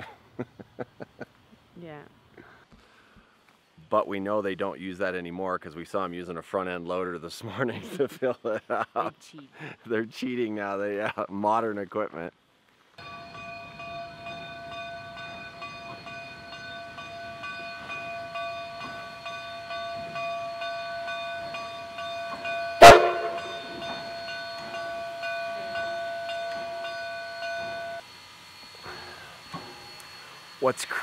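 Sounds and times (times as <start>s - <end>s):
steam locomotive whine: 13.0s - 31.0s.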